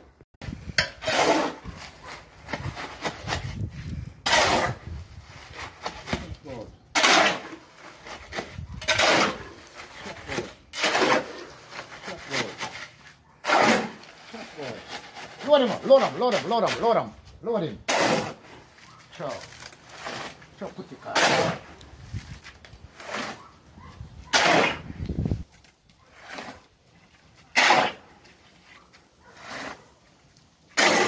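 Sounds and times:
shovel scraping gravel: 0.7 - 17.1, 17.8 - 31.0.

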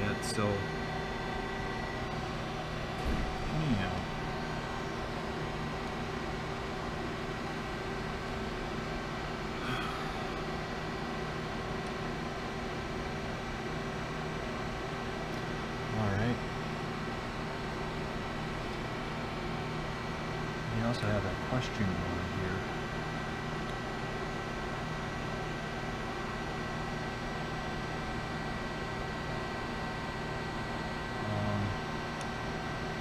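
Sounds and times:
steady machine hum: 0.0 - 33.0.

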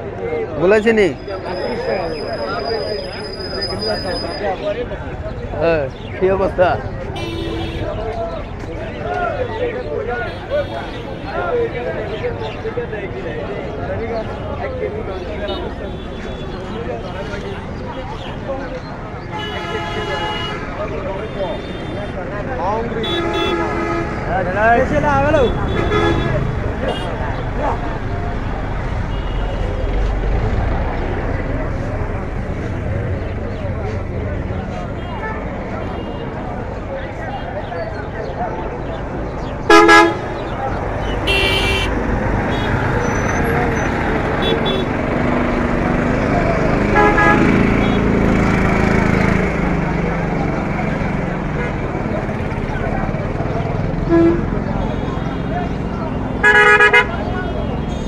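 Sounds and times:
many people talking: 0.0 - 58.0
murmur of crowd voices: 0.0 - 58.0
passing vehicles: 0.0 - 58.0
vehicle horns: 7.0 - 8.2, 10.2 - 11.6, 15.4 - 17.6, 19.2 - 22.3, 22.9 - 24.5, 25.3 - 27.6, 29.0 - 29.9, 34.8 - 36.4, 39.6 - 45.1, 46.8 - 48.6, 53.9 - 58.0.

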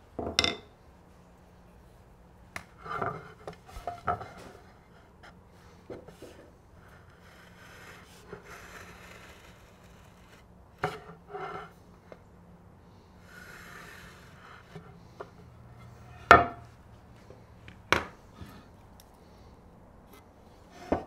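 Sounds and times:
scratchy rubbing: 6.2 - 11.8, 13.2 - 14.9
wooden knocks on workbench: 17.9 - 18.1.

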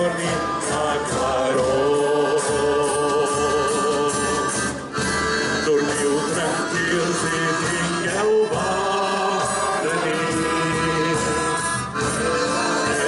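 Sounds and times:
group singing in unison: 0.0 - 4.8, 6.8 - 13.0
accordion: 0.0 - 13.0.

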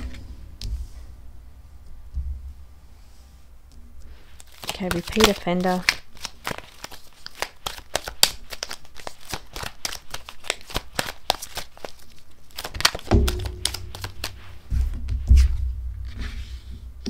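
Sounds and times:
cards being shuffled: 4.0 - 16.6.

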